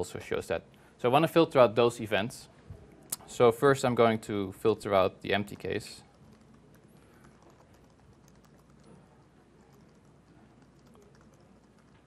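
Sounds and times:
laptop keyboard typing: 5.5 - 12.0.

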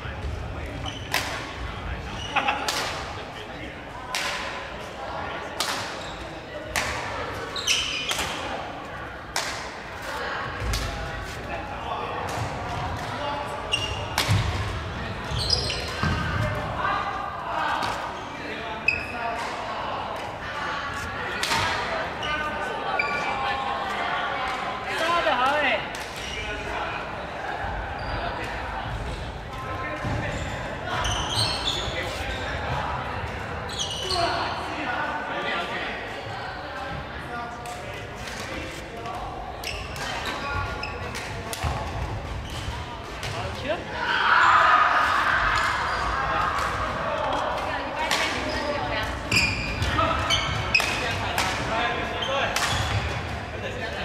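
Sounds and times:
voices in sports hall: 0.0 - 54.0
badminton rackets hitting shuttlecock: 13.8 - 14.7, 41.0 - 42.0, 46.6 - 51.7.

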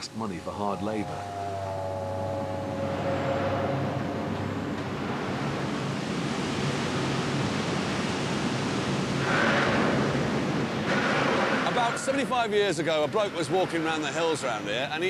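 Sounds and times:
low industrial hum: 0.0 - 7.8.

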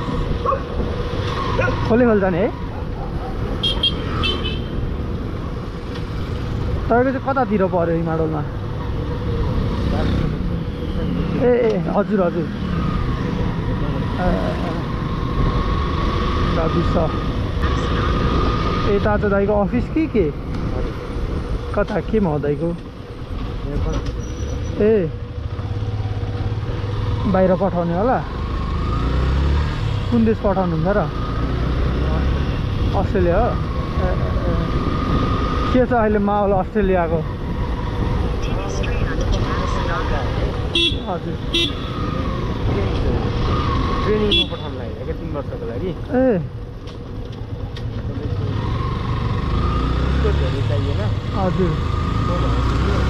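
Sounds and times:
motorcycle engine and road noise: 0.0 - 53.0.

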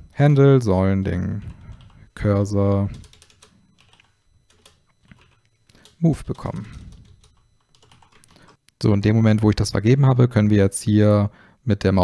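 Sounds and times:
computer keyboard typing: 1.3 - 8.6.

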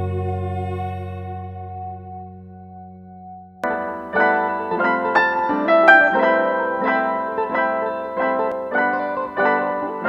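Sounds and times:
piano music: 3.6 - 10.0.

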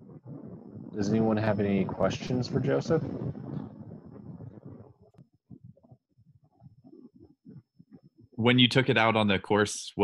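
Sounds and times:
low rumbling microphone noise: 0.0 - 10.0.

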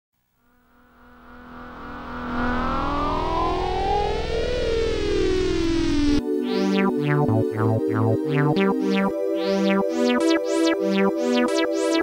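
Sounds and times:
synthesizer sweep: 0.6 - 12.0.

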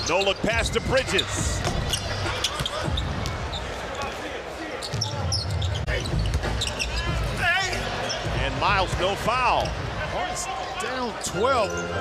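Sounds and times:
sneakers squeaking: 0.0 - 7.3, 7.9 - 8.4.

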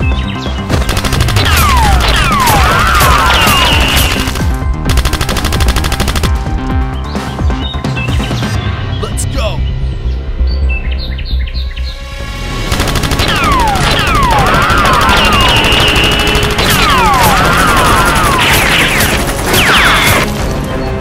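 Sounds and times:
background music: 0.0 - 21.0
automatic gunfire sound effects: 0.7 - 6.5, 12.7 - 20.4.

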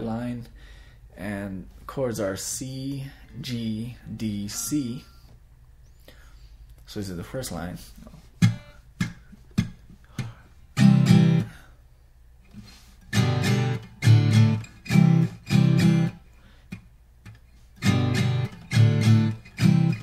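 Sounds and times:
acoustic guitar strumming chords: 4.2 - 5.3, 8.3 - 11.5, 12.7 - 16.2, 17.6 - 20.0.

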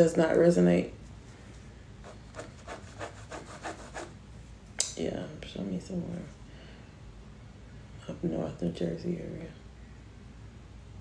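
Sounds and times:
pen scratching on paper: 2.0 - 4.1.

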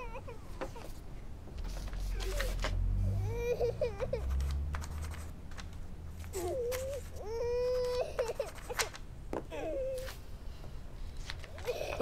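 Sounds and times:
child crying and wailing: 0.0 - 0.8, 2.1 - 4.4, 6.4 - 8.8, 11.6 - 12.0.

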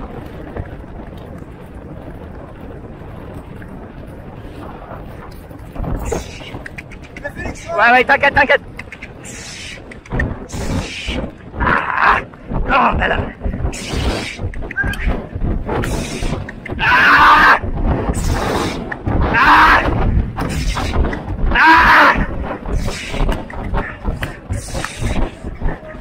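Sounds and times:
wind rush: 0.0 - 26.0
hoof thuds: 8.7 - 26.0
rasping breaths: 22.2 - 26.0.

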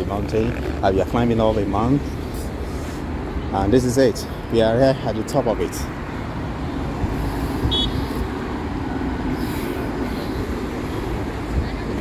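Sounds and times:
city road traffic: 0.0 - 12.0.

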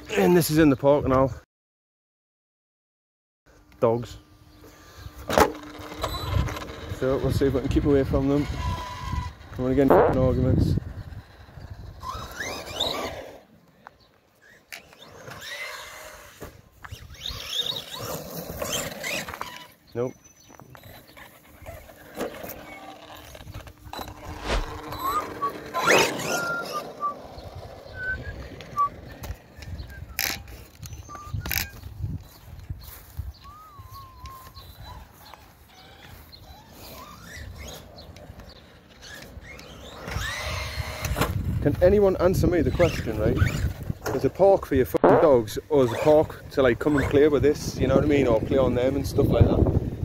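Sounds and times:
electric motor whine: 4.0 - 13.6, 14.3 - 44.0
tyre noise on tarmac: 10.9 - 32.4
man whistling: 26.3 - 27.2, 27.9 - 29.0, 31.0 - 31.5, 33.4 - 34.6.

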